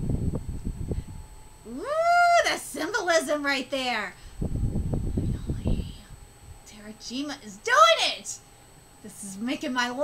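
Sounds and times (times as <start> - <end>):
low irregular rumbling: 0.0 - 10.0.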